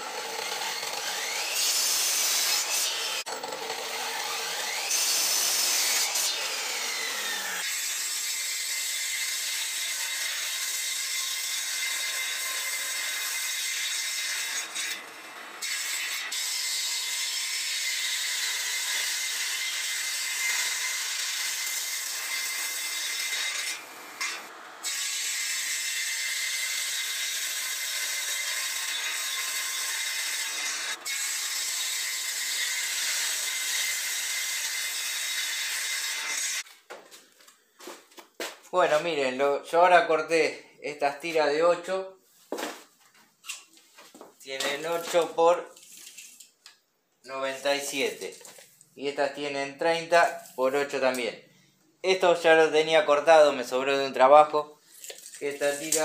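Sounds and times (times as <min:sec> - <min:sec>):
table saw ripping boards: 0:00.0 - 0:36.8, 0:43.5 - 0:46.6, 0:54.8 - 0:56.0.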